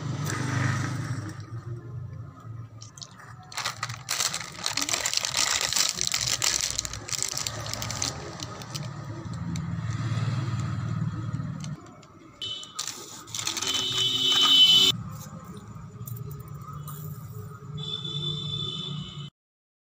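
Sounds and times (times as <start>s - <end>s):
plastic packet crinkling: 2.8s - 10.8s, 11.4s - 14.9s.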